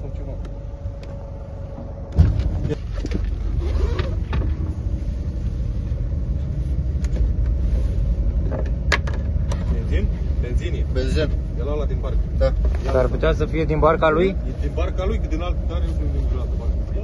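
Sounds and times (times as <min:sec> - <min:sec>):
boat engine rumbling: 0:00.0 - 0:17.0
sudden thump: 0:02.1 - 0:02.8.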